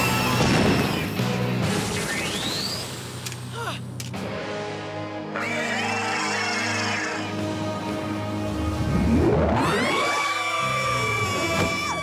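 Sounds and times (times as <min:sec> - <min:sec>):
dramatic background music: 0:00.0 - 0:12.0.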